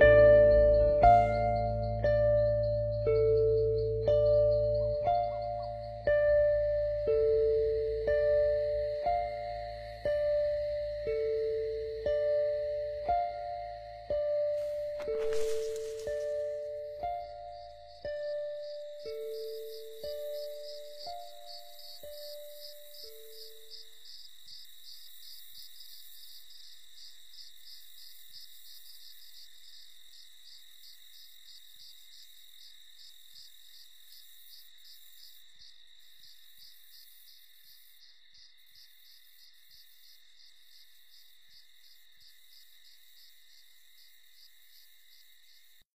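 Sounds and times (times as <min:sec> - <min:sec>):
faint insect chirping: 0:00.0 - 0:45.9.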